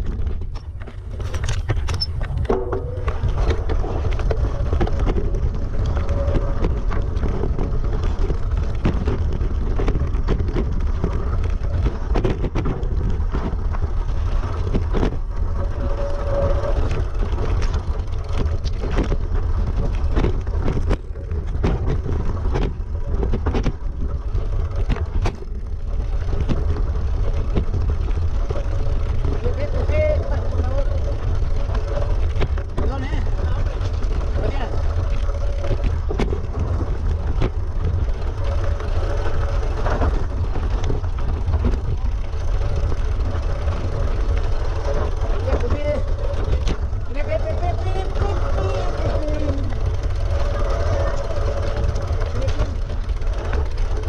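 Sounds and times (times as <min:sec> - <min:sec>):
bike rattling over stones: 0:00.0 - 0:54.0
low rumble of wind: 0:00.0 - 0:54.0.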